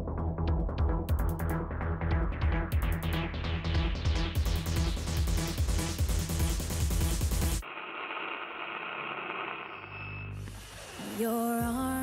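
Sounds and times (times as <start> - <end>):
steady static hiss: 7.6 - 12.0.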